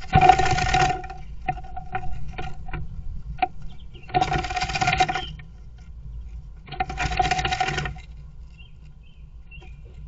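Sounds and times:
bird scratching and pecking wood: 0.0 - 10.0.

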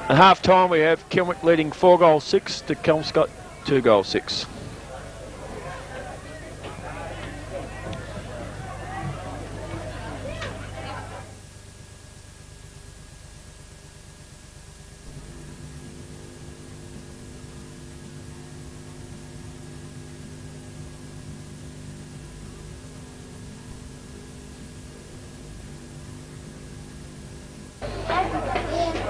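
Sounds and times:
electrical hum: 0.0 - 29.0
steady buzzing tones: 0.0 - 29.0.

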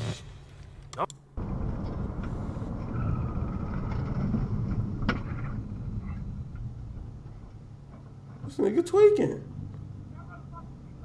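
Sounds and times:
car road noise rumble: 1.4 - 8.8, 9.4 - 11.0.

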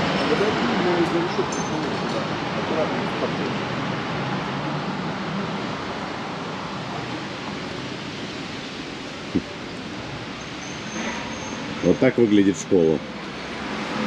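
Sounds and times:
street traffic noise: 0.0 - 14.0.

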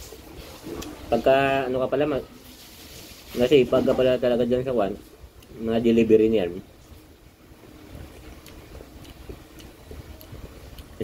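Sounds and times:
low room rumble: 3.5 - 11.0.

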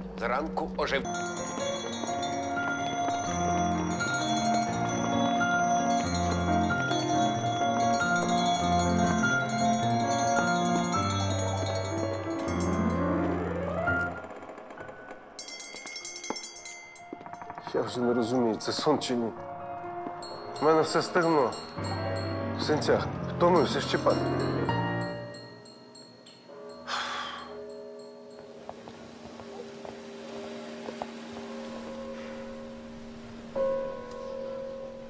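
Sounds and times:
shimmering chime tones: 0.9 - 14.3, 15.4 - 19.3, 20.1 - 28.7.

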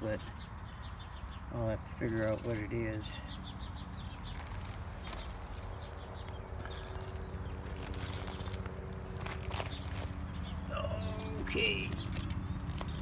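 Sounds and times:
footsteps crunching on rock: 4.2 - 10.7, 12.0 - 13.0.

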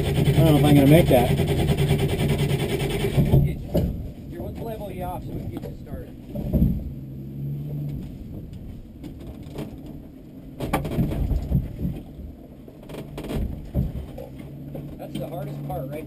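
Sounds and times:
engine running at low revs: 0.0 - 16.0
sharp knocks from vehicle: 3.0 - 4.7, 6.3 - 6.9, 10.6 - 15.0.

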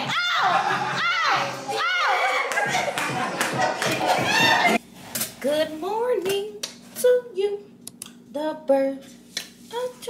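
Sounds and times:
party music and voices: 0.0 - 4.8.

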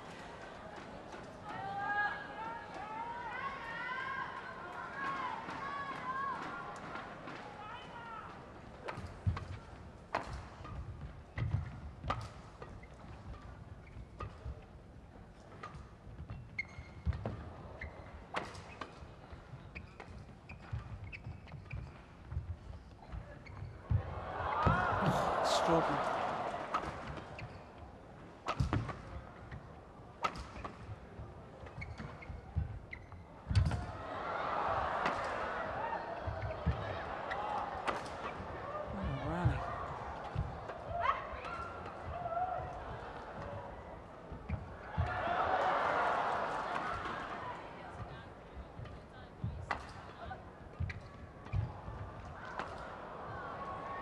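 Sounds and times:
crowd cheering: 23.9 - 27.4, 33.9 - 43.8, 44.7 - 47.8, 52.3 - 54.0
crowd voices: 23.9 - 27.4, 33.8 - 49.4.

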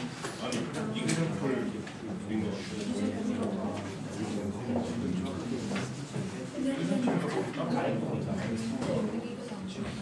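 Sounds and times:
people talking at once: 0.4 - 10.0.

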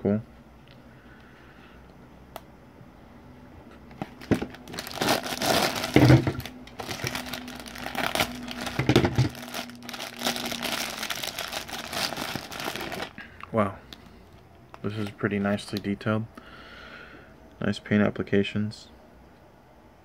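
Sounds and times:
plastic bags crinkling: 3.9 - 13.2.

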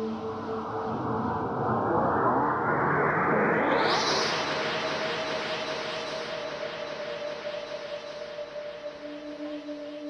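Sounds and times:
ambient electronic drone music: 0.0 - 10.0.

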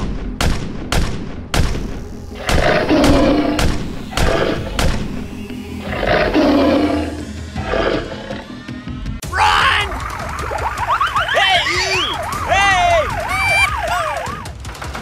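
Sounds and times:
pistol shots: 0.0 - 5.0
background music: 0.0 - 15.0
tiger roaring: 2.4 - 4.8, 5.8 - 8.5.

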